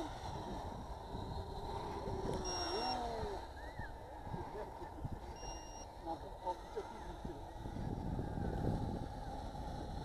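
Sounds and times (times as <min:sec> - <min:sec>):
low rumble of noise: 0:00.0 - 0:10.0
short electronic beeps: 0:02.4 - 0:03.0, 0:05.4 - 0:05.9.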